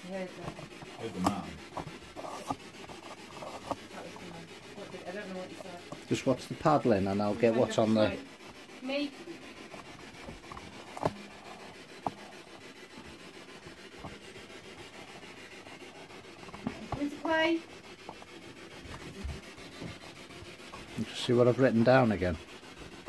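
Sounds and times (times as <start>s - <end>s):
faint rubbing noise: 0.0s - 23.0s.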